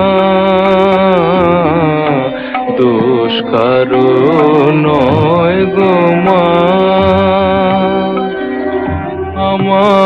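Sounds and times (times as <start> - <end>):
person singing ornamented melody: 0.0 - 10.0
sustained instrumental accompaniment: 0.0 - 10.0.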